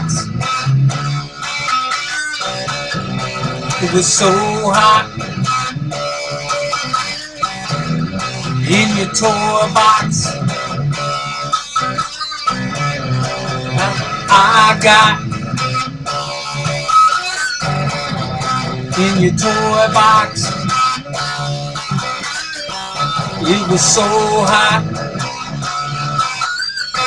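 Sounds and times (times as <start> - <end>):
electric guitar: 0.0 - 27.0
person singing: 3.7 - 5.1, 8.6 - 10.4, 13.6 - 15.3, 18.9 - 20.7, 23.2 - 25.0.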